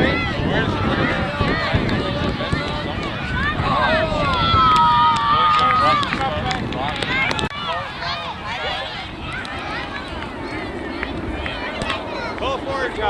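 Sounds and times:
children and spectators shouting: 0.0s - 13.0s.

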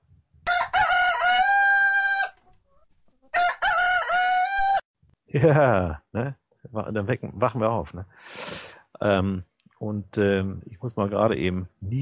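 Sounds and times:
rooster crowing: 0.4s - 2.4s, 3.3s - 4.8s.

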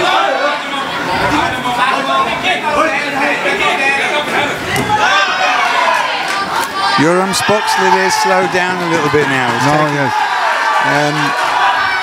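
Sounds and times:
crowd shouting and chattering: 0.0s - 12.0s.

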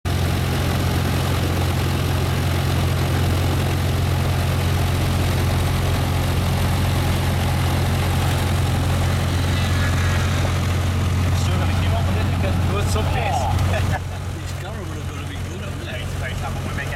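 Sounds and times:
aircraft piston engine idling: 0.1s - 16.9s.

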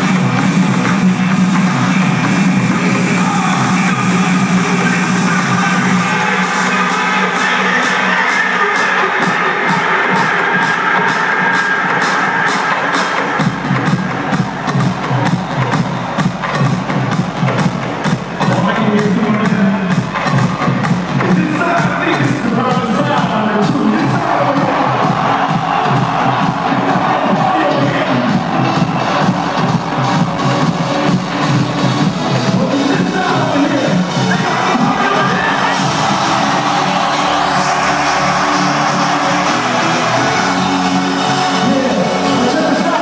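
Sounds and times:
crowd cheering: 0.0s - 43.0s
electronic dance music: 0.0s - 43.0s.

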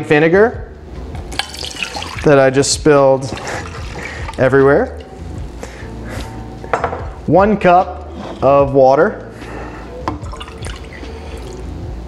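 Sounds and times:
water pouring into saucepan: 1.4s - 2.4s, 3.2s - 5.5s, 10.2s - 11.7s.

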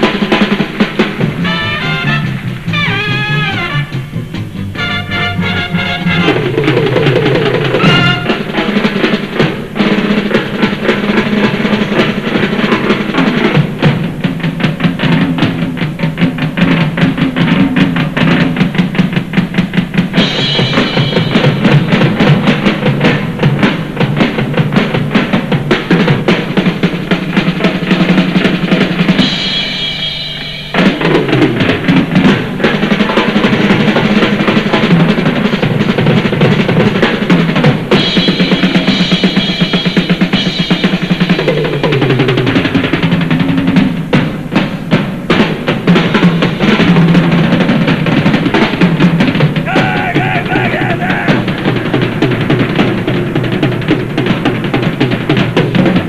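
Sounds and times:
fast drum kit playing: 0.0s - 56.0s.

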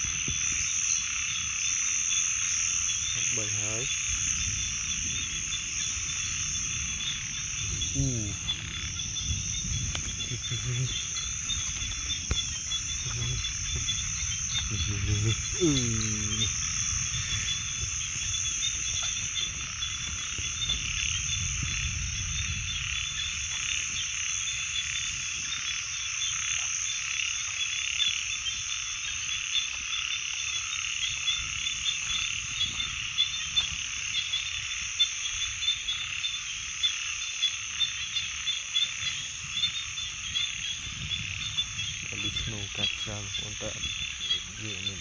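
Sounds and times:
frogs calling: 0.0s - 45.0s.

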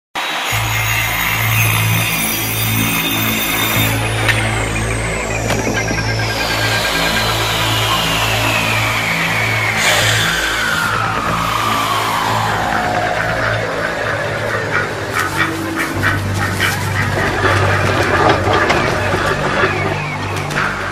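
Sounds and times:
high tone sliding down: 0.3s - 20.9s
music with low bass line: 0.6s - 20.9s.

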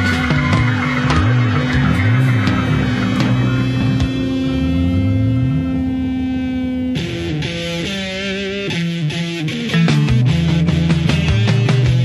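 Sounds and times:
progressive rock guitar and bass: 0.0s - 12.0s.

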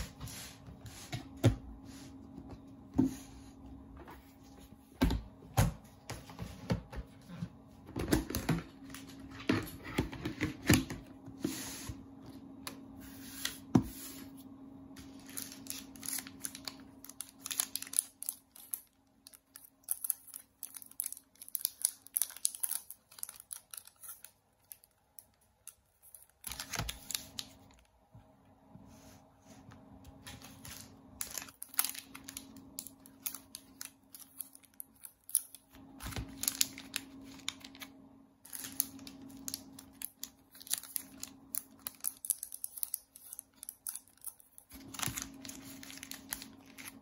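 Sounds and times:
plastic sleeves crinkling: 15.0s - 27.9s, 30.1s - 47.0s.

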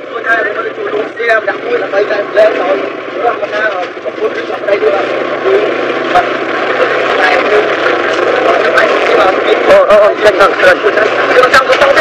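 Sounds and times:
dense noisy background: 0.0s - 12.0s
people talking: 0.0s - 12.0s.

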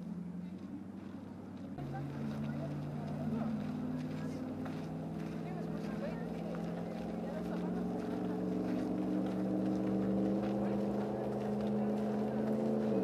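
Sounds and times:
engine running at low revs: 0.0s - 13.0s
faint voices: 0.0s - 13.0s.

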